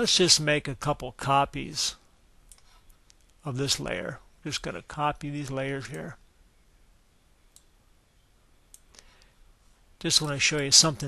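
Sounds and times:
faint computer mouse clicks: 2.5 - 3.4.

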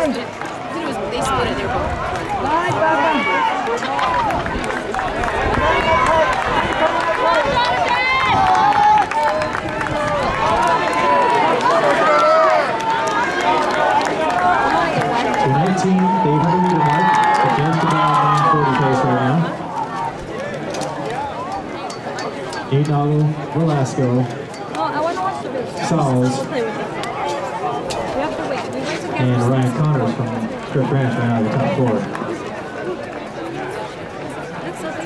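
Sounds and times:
spectators shouting and talking: 0.0 - 35.0.

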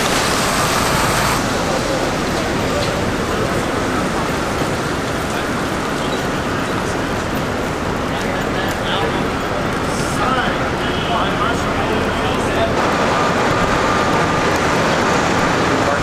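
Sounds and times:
traffic on wet pavement: 0.0 - 16.0
people talking: 0.6 - 16.0.

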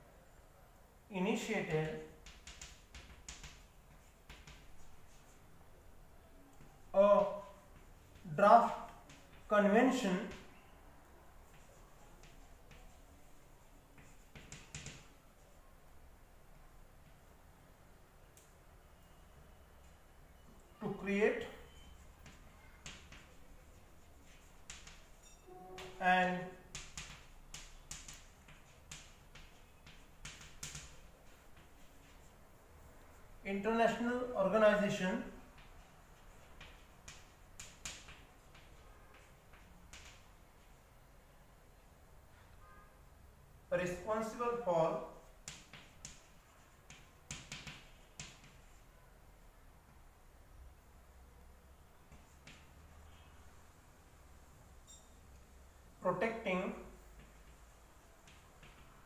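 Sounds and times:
chalk scratching on chalkboard: 2.1 - 5.6, 6.8 - 10.6, 11.3 - 15.6, 21.5 - 34.0, 34.7 - 40.9, 43.8 - 49.0.

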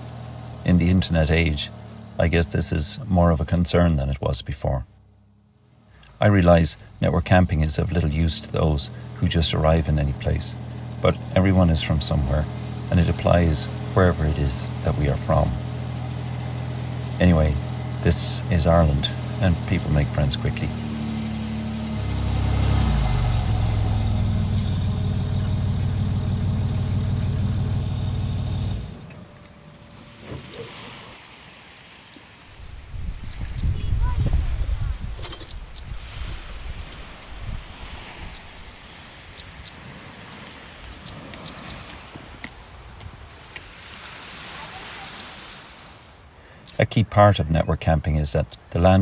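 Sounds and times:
diesel engine running: 0.0 - 30.9
small bird chirping: 32.7 - 48.8.

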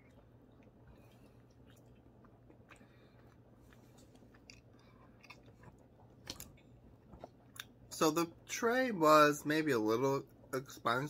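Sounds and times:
man chewing: 0.0 - 7.8.

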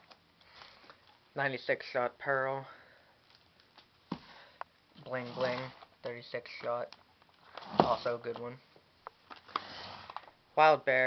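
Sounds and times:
handling cardboard boxes: 4.0 - 8.6.

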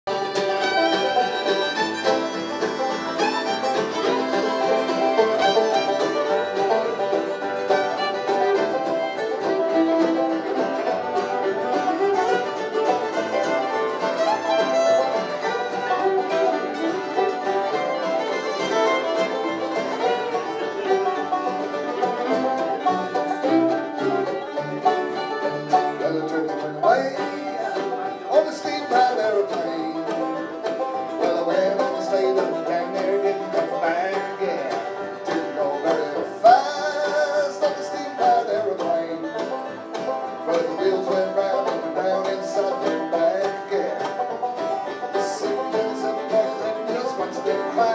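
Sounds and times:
bluegrass band playing: 0.0 - 47.9.

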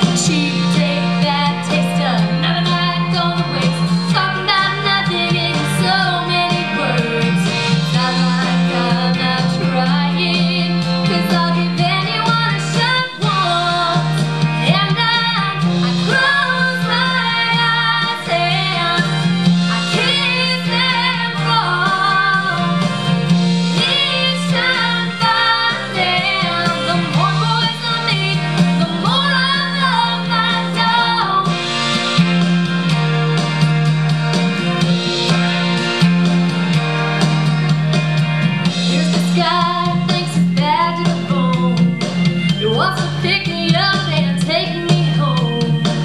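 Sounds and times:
woman singing country-pop song: 0.0 - 31.6, 38.8 - 46.0
instrumental accompaniment: 0.0 - 46.0.

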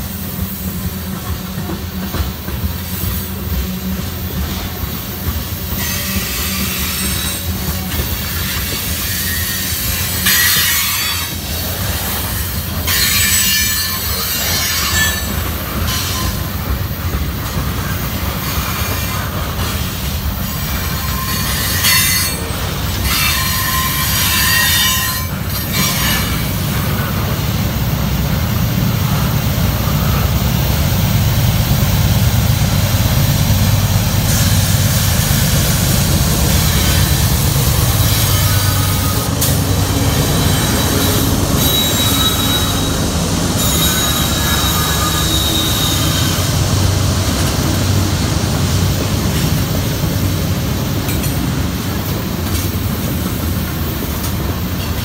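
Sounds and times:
train wheels rumbling on rail: 0.0 - 55.0
high-pitched wheel squeal: 20.7 - 26.4, 40.2 - 43.0, 43.6 - 46.5.

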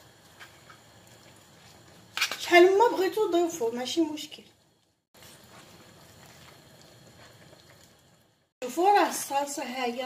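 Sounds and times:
sauce simmering in a pan: 0.0 - 10.0.

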